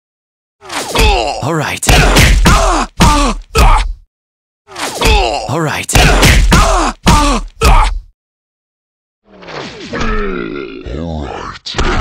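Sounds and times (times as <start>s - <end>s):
person grunting: 0.8s - 4.0s, 4.7s - 8.1s, 9.9s - 12.0s.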